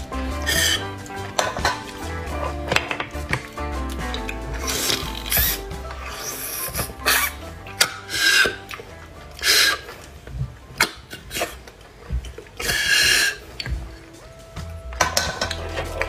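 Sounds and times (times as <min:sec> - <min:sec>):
background music with bass line: 0:00.0 - 0:10.9, 0:12.0 - 0:16.0
slurping marrow from bone: 0:08.0 - 0:10.1.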